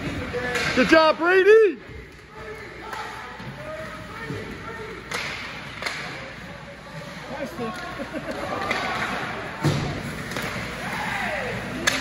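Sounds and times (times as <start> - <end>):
steady arena hum: 0.0 - 12.0
hockey sticks and puck knocking: 0.1 - 1.0, 2.0 - 6.4, 7.6 - 10.9, 11.7 - 12.0.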